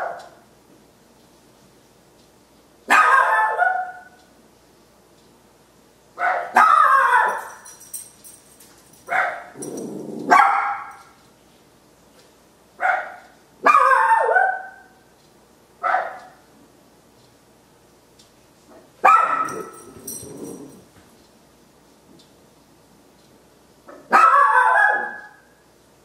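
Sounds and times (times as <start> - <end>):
small dog barking: 2.9 - 4.2, 6.2 - 7.6, 9.1 - 11.1, 12.8 - 14.9, 15.8 - 16.4, 19.0 - 20.7, 23.9 - 25.4.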